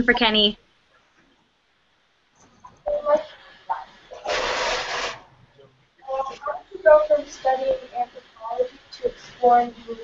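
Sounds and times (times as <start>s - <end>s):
microphone rubbing noise: 3.7s - 5.4s.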